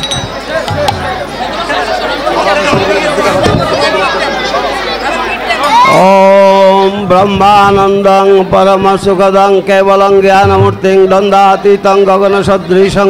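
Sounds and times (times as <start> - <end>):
crowd talking: 0.0 - 13.0
man chanting: 6.0 - 13.0.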